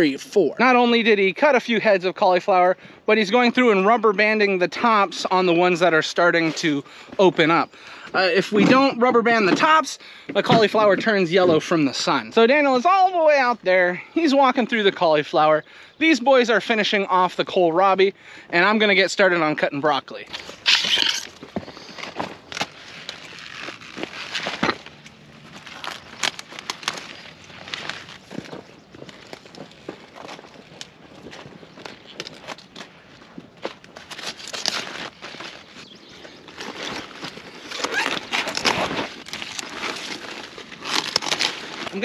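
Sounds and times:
stems crackling and snapping: 3.3s - 15.5s, 20.1s - 42.0s
leaves rustling: 20.1s - 42.0s.

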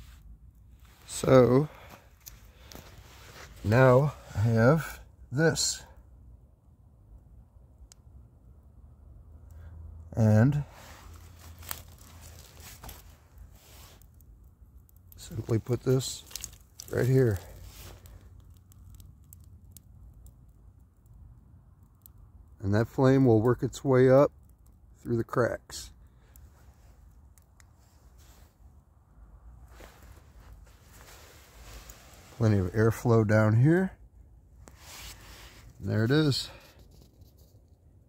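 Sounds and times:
fire crackling: 0.0s - 38.0s
low steady hum: 0.0s - 38.0s
low steady rumble: 0.0s - 38.0s
dry twigs rustling and clicking: 10.8s - 21.0s.

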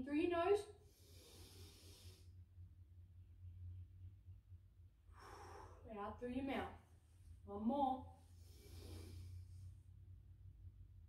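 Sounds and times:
low steady hum: 0.0s - 11.0s
breath drawn in through nose: 0.9s - 2.3s, 8.4s - 9.7s.

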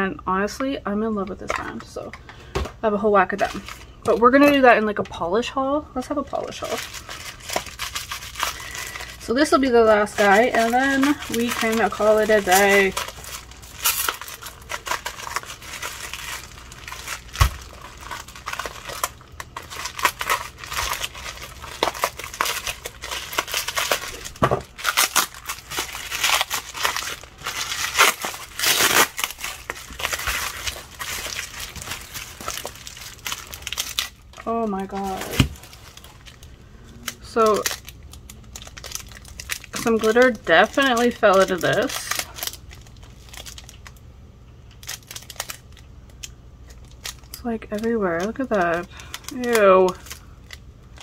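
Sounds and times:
bubble wrap crackling and rustling: 3.1s - 5.0s, 6.0s - 44.0s, 44.6s - 51.0s.

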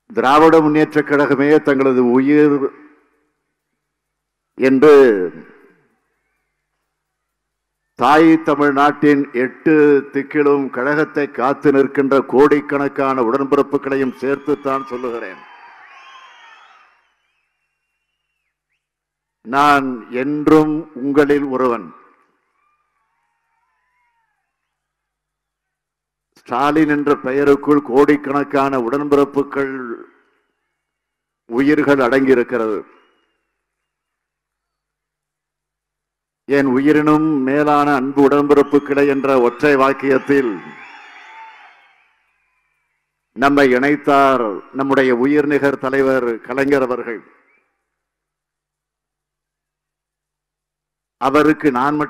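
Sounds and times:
man's voice over public address: 0.0s - 3.0s, 4.6s - 5.7s, 8.0s - 15.4s, 19.5s - 22.2s, 26.4s - 30.1s, 31.5s - 33.0s, 36.5s - 40.8s, 43.4s - 47.4s, 51.2s - 52.0s.

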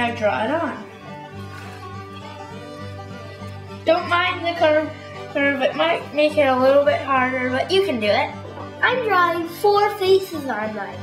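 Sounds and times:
instrumental string music: 0.0s - 11.0s.

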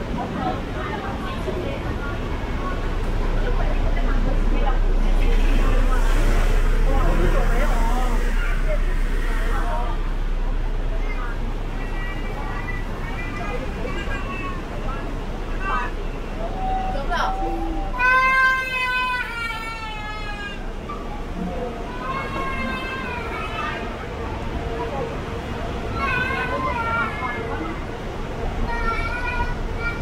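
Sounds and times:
low steady hum: 0.0s - 25.9s
passers-by talking: 0.0s - 30.0s.

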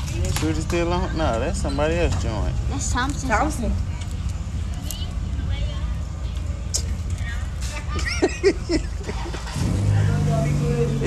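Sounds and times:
engine low rumble: 0.0s - 11.0s.

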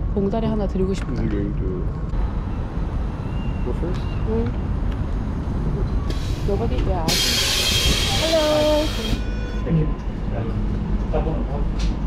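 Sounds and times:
street traffic rumble: 0.0s - 12.0s
air brakes hissing: 6.0s - 9.6s.

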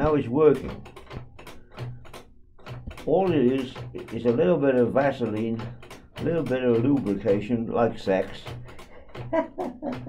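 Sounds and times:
selector knob clicks: 0.0s - 10.0s.

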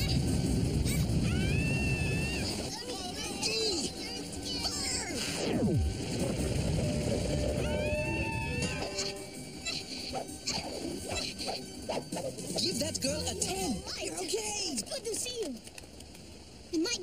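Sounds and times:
low rumble: 0.0s - 2.8s, 5.4s - 8.6s
background music: 0.0s - 15.0s.

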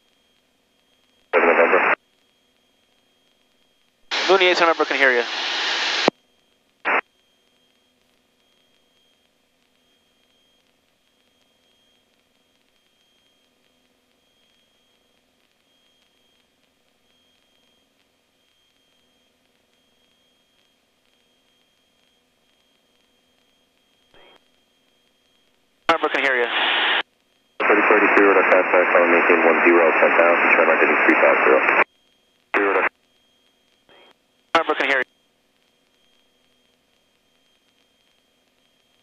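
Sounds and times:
faint steady hum: 0.0s - 39.0s
radio squelch bursts: 1.4s - 2.0s, 4.1s - 6.1s, 24.1s - 24.4s, 25.9s - 27.0s, 27.6s - 31.8s, 32.6s - 32.9s, 33.9s - 35.0s.

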